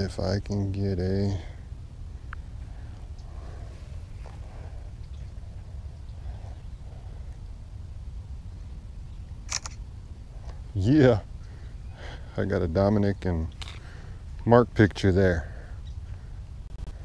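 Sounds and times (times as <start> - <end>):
low rumble: 0.0 - 14.8
phone camera shutter: 9.5 - 9.8.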